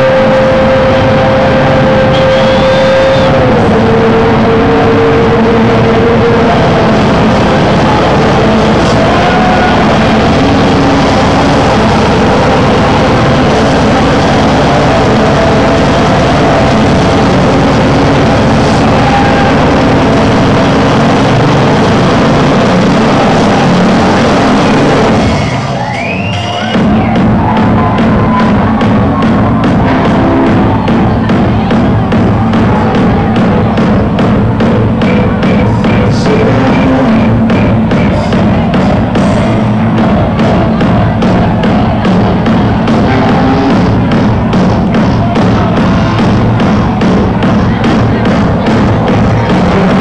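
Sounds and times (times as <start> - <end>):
distorted electronic club music: 0.0 - 50.0.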